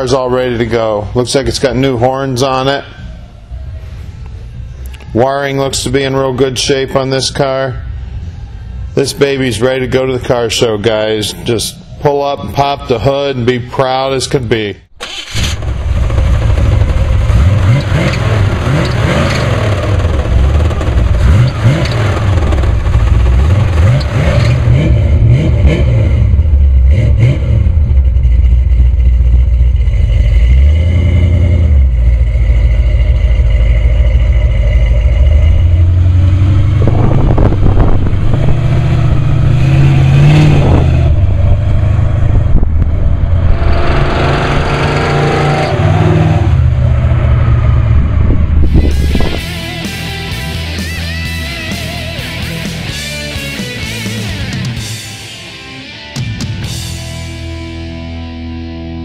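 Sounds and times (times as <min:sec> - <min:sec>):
car engine revving: 0:15.0 - 0:59.0.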